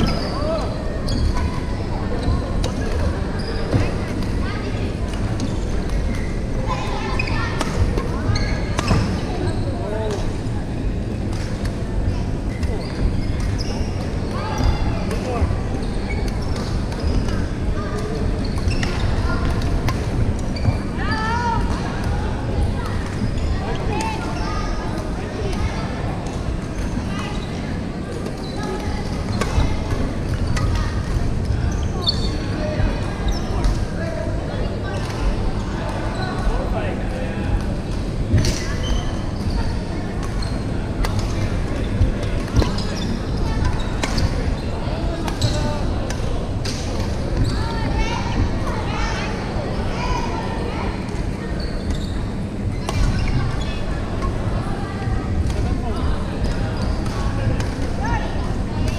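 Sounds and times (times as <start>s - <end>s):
echoing chatter: 0.0s - 58.9s.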